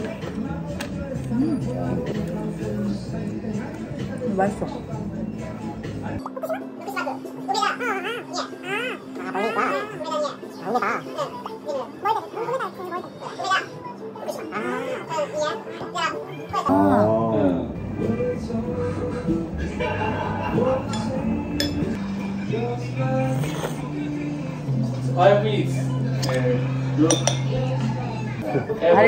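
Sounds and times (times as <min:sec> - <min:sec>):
background music: 0:00.0 - 0:29.0
high-pitched voices: 0:06.2 - 0:17.8
tableware clinking: 0:20.9 - 0:22.0, 0:26.2 - 0:27.8.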